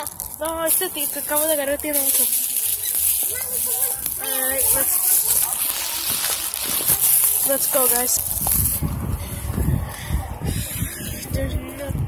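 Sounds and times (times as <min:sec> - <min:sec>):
person talking: 0:00.0 - 0:02.6.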